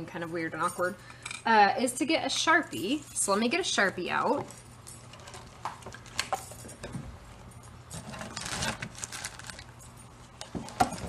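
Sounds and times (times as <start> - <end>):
rustling: 8.0 - 11.0.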